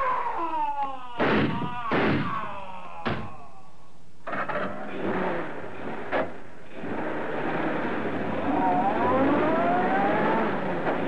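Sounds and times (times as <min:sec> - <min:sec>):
car engine starting and running: 0:04.3 - 0:11.0.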